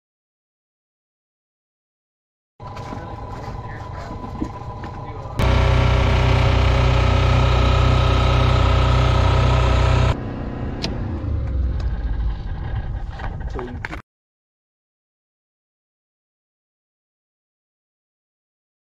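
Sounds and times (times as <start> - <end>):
machinery humming: 2.6 - 10.2.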